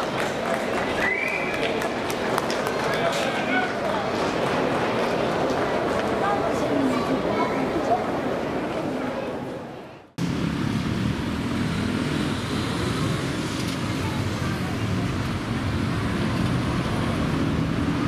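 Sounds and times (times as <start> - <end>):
monorail train rumbling on track: 0.0 - 18.0.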